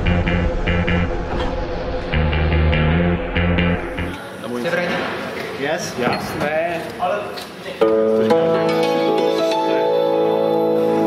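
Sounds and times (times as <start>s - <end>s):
music with low bass riff: 0.0s - 4.2s.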